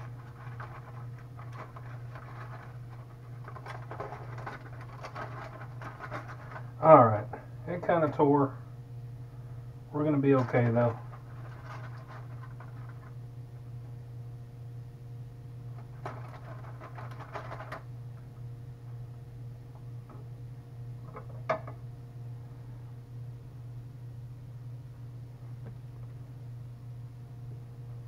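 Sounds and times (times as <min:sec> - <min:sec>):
aluminium foil crinkling: 0:00.0 - 0:06.8, 0:10.2 - 0:13.2, 0:15.8 - 0:17.8
utensil scraping: 0:00.0 - 0:06.8, 0:10.2 - 0:13.1
low steady hum: 0:00.0 - 0:28.0.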